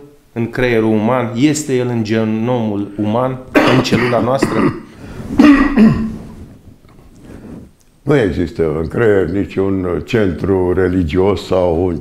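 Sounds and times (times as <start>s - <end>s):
man clearing his throat: 3.6s - 6.2s.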